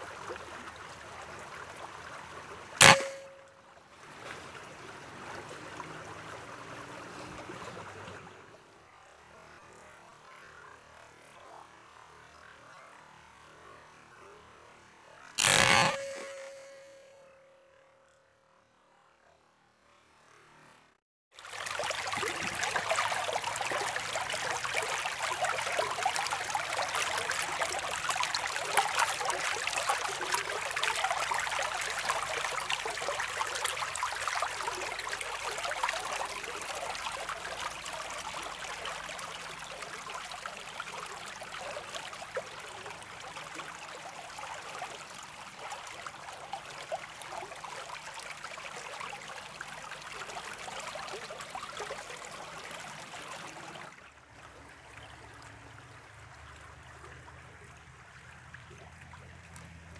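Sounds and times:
stream running over rocks: 0:00.0 - 0:14.4, 0:21.3 - 0:59.9.

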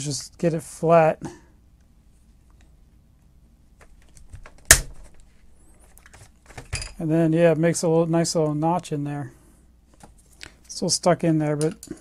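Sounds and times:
sharp snap of punch cutting metal: 0:04.7 - 0:04.9.

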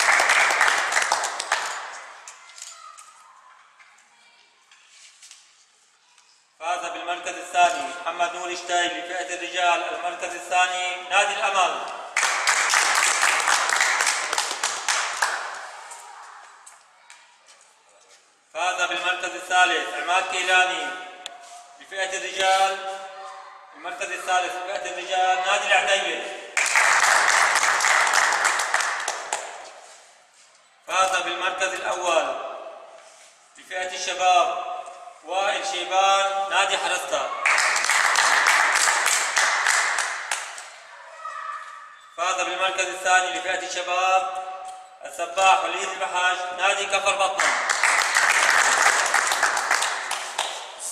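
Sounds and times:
audience applauding: 0:00.0 - 0:02.0, 0:12.2 - 0:15.8, 0:26.6 - 0:29.4, 0:37.4 - 0:40.5, 0:47.4 - 0:50.6.

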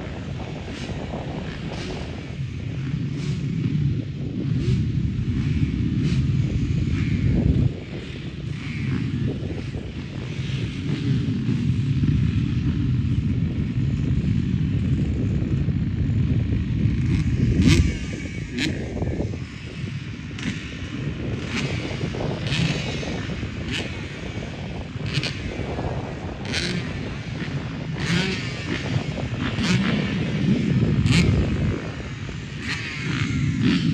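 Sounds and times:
distant motorbikes rumbling: 0:00.0 - 0:33.9.

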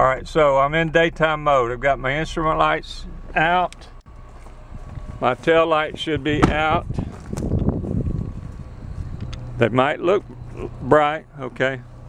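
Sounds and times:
low rumbling wind: 0:00.0 - 0:12.0.

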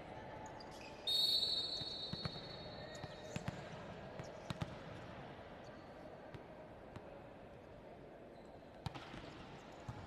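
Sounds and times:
high whistle tone: 0:01.1 - 0:02.3.

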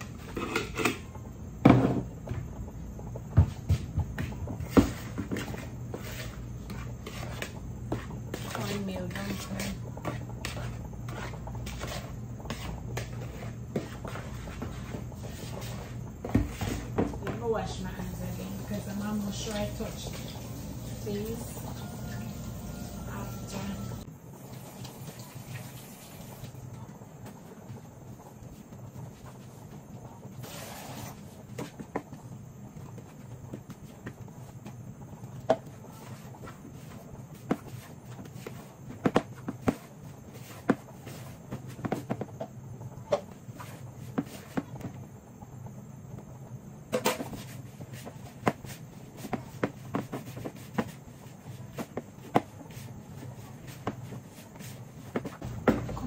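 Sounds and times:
steady low hum: 0:00.0 - 0:24.4, 0:26.5 - 0:56.0
hands kneading dough in bowl: 0:03.2 - 0:20.2, 0:26.6 - 0:45.0, 0:47.0 - 0:56.0.

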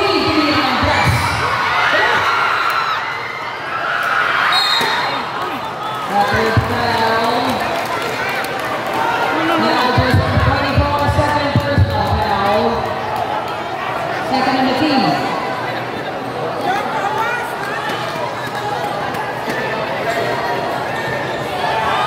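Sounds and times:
crowd chatter and calls: 0:00.0 - 0:22.0.

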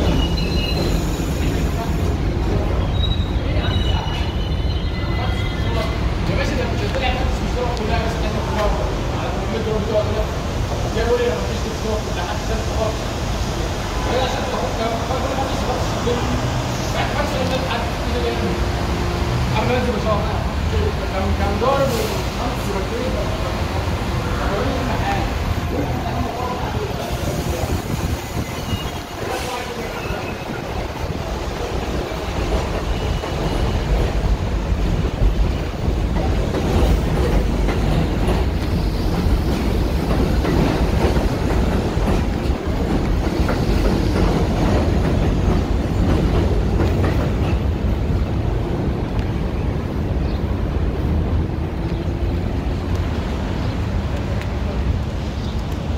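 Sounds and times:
elevated train rumbling: 0:00.0 - 0:55.9.

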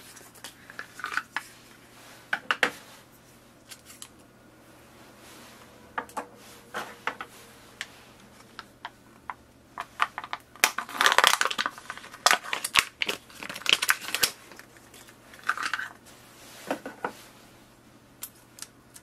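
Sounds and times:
plastic packaging crinkling: 0:00.0 - 0:01.6, 0:06.6 - 0:16.0.

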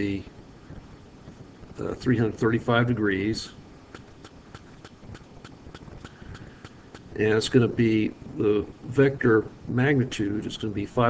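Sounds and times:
stylus clicking on pen tablet: 0:03.9 - 0:07.1.

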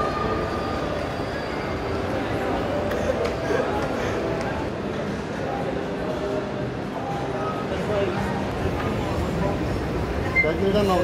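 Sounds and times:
indoor shopping mall rumble: 0:00.0 - 0:11.0.

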